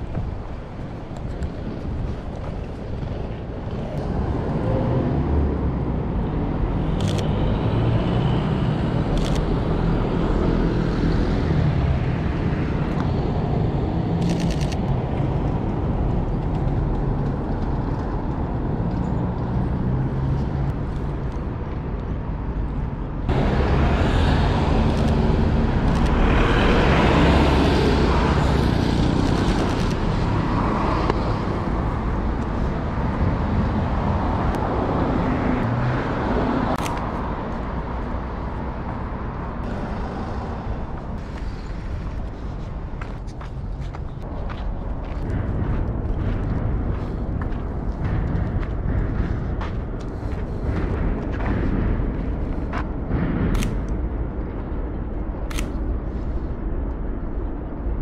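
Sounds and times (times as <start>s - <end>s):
rumble of passing cars: 0.0s - 58.0s
sharp clicks: 36.7s - 37.2s, 53.5s - 54.0s, 55.5s - 55.9s.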